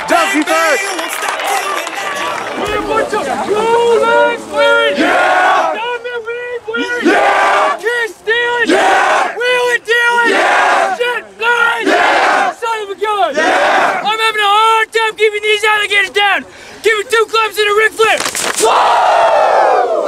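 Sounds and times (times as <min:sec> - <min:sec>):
loud group yells: 0:00.0 - 0:05.9, 0:06.8 - 0:07.8, 0:08.6 - 0:12.6, 0:13.2 - 0:14.1, 0:18.6 - 0:20.0
group chanting: 0:02.6 - 0:05.8, 0:07.0 - 0:07.8, 0:08.7 - 0:09.4, 0:11.8 - 0:12.6, 0:13.3 - 0:14.1.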